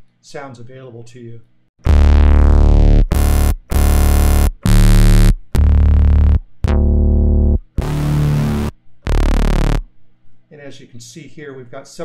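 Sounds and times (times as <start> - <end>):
synth bass notes: 1.8 - 9.9.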